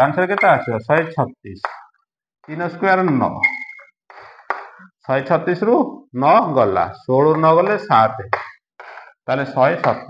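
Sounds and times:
man speaking: 0.0s - 1.7s, 2.5s - 3.5s, 4.2s - 8.5s, 9.3s - 10.0s.

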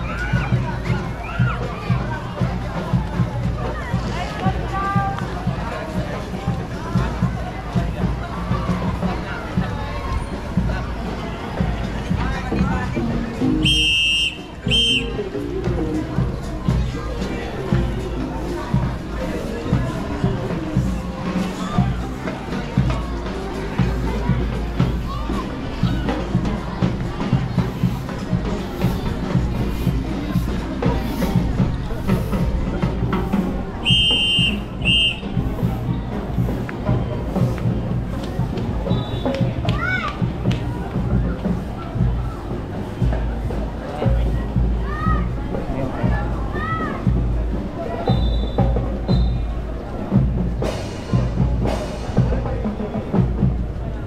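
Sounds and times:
crowd voices: 0.0s - 54.0s
marching band music: 0.3s - 54.0s
shrill whistle blasts: 13.6s - 15.1s, 33.8s - 35.2s, 38.9s - 39.4s, 48.1s - 49.4s.

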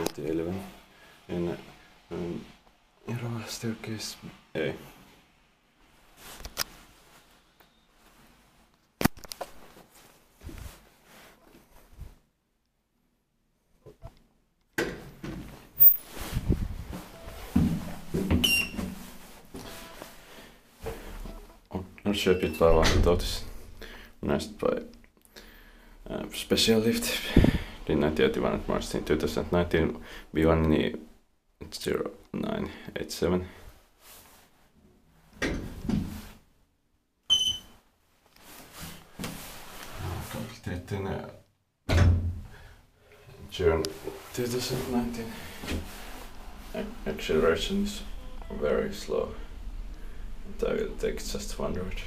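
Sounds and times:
footsteps: 15.3s - 20.2s, 43.8s - 52.0s
short beep: 15.8s - 16.1s, 37.3s - 37.7s, 48.1s - 49.6s
elevator doors sliding: 44.6s - 52.0s.

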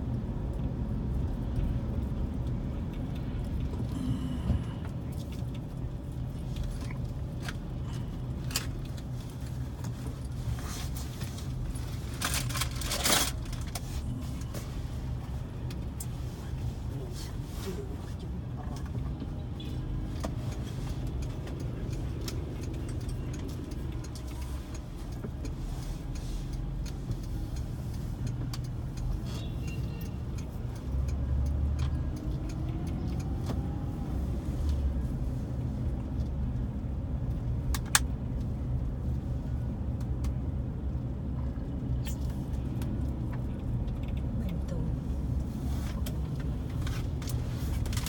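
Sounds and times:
car driving on paved road: 0.0s - 48.0s.

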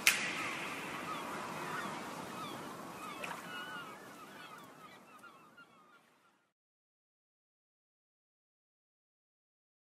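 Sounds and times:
sea surf: 0.0s - 6.3s
bird calls: 0.0s - 6.5s.

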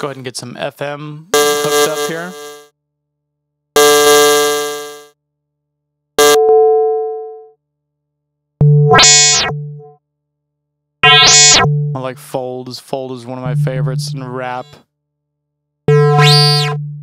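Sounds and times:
synth notes: 8.6s - 10.0s, 11.0s - 12.6s, 13.3s - 14.8s, 15.9s - 17.0s.

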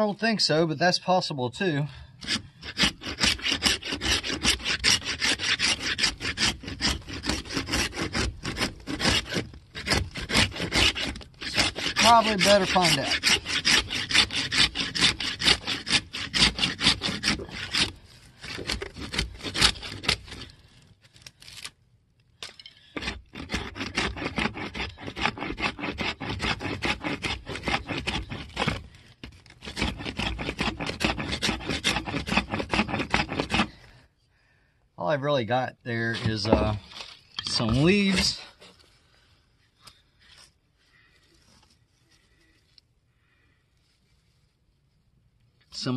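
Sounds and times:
knife scraping wooden stick: 2.2s - 20.6s, 22.4s - 33.9s, 35.9s - 38.9s.

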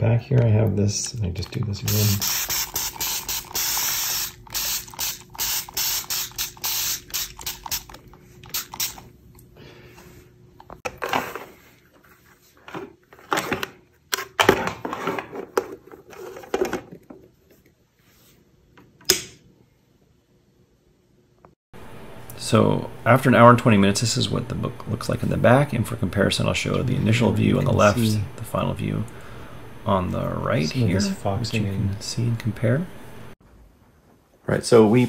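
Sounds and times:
spray bottle hissing sprays: 1.9s - 9.1s.

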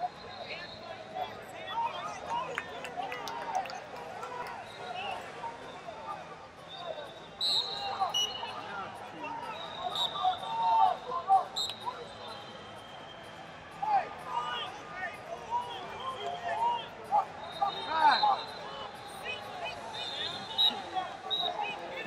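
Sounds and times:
referee whistle blasts: 6.7s - 8.5s, 9.4s - 10.7s, 11.5s - 13.2s, 15.6s - 21.8s.

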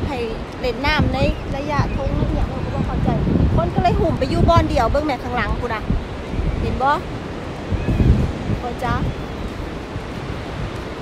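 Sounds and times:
ocean surf: 0.0s - 11.0s
wind buffeting microphone: 0.0s - 11.0s.

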